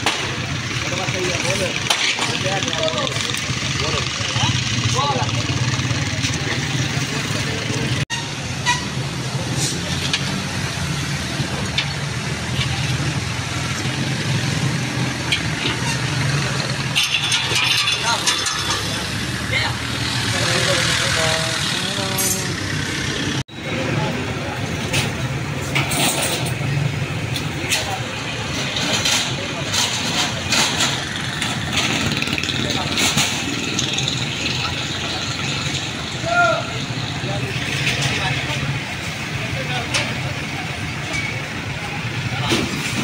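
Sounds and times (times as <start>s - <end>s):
people's voices: 0.0s - 43.0s.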